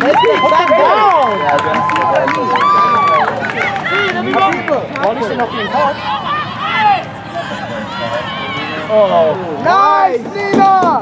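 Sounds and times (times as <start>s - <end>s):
low crowd murmur: 0.0s - 11.0s.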